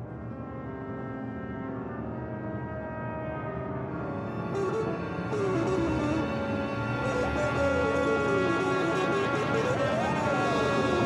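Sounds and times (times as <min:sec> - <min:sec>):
orchestral jazz music: 0:04.6 - 0:11.0.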